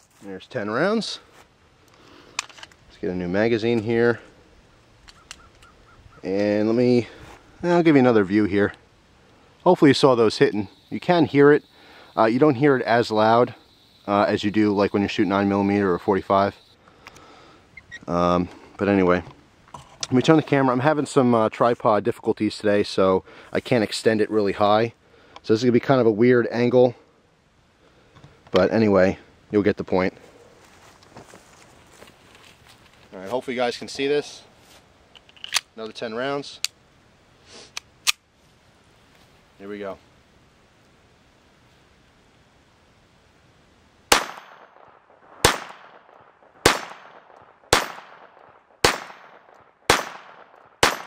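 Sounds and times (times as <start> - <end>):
soft footsteps: 30.2 - 33.5.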